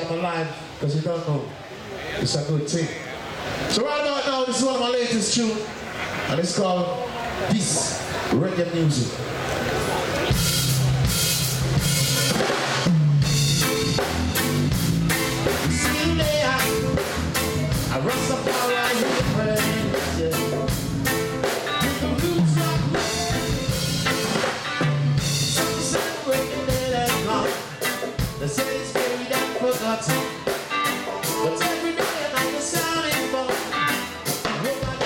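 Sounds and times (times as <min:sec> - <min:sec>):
live reggae band playing: 0:00.0 - 0:35.0
bass guitar line: 0:10.0 - 0:35.0
drum kit rhythm: 0:10.2 - 0:35.0.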